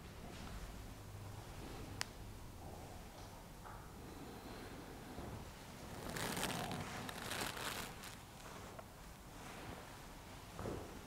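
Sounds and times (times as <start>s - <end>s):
clothing rustling: 5.8s - 8.8s.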